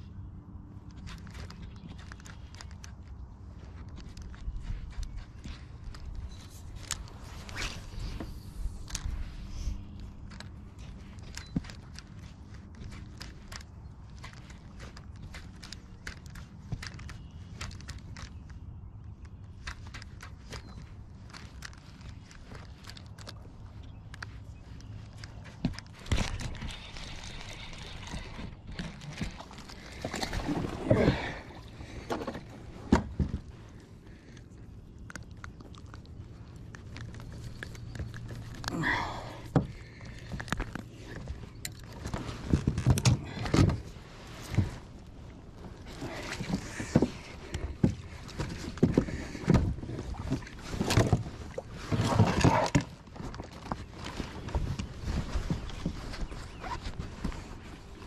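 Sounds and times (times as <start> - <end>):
gear knocking in plastic kayak: 9.8 - 34.5.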